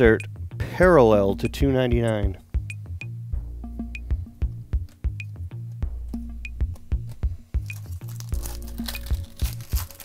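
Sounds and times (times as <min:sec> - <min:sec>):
background music with a beat: 0:00.0 - 0:10.0
foil wrapper crinkling: 0:07.6 - 0:10.0.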